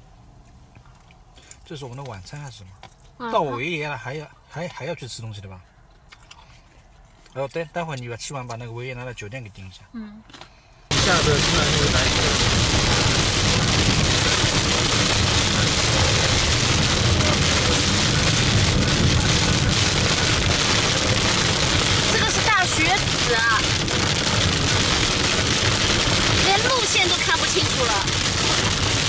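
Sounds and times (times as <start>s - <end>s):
tyres rumbling on snowy road: 10.9s - 29.0s.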